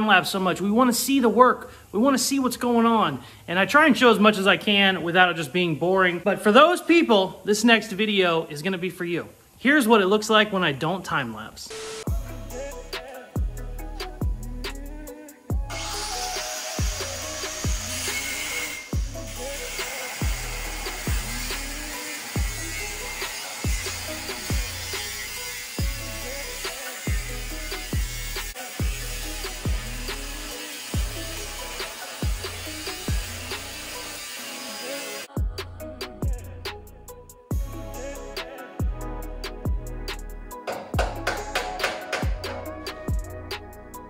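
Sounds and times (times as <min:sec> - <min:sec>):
music with heavy bass beat: 0:11.8 - 0:17.9, 0:19.0 - 0:19.5, 0:25.8 - 0:26.2, 0:35.4 - 0:44.0
angle grinder cutting metal: 0:15.7 - 0:35.3, 0:40.7 - 0:42.7.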